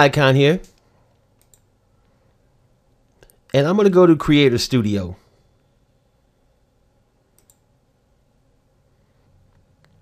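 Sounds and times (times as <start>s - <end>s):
computer mouse clicks: 0.6s - 1.7s, 7.3s - 7.6s.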